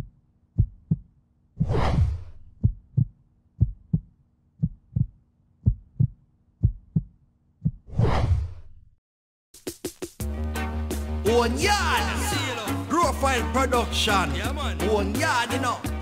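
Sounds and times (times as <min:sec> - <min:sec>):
heartbeat thumps: 0:00.0 - 0:01.2, 0:02.3 - 0:07.9
whoosh: 0:01.6 - 0:02.6.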